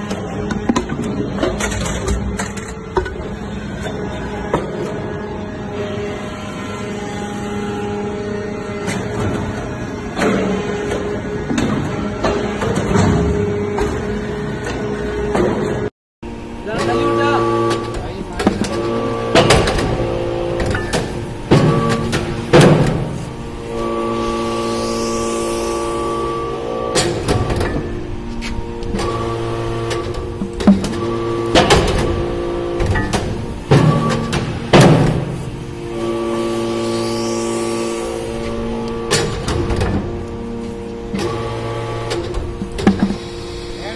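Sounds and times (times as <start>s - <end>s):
hydraulic press hum: 0.0s - 43.9s
press knocking and clanking: 17.7s - 23.1s, 29.9s - 35.4s, 42.1s - 43.3s.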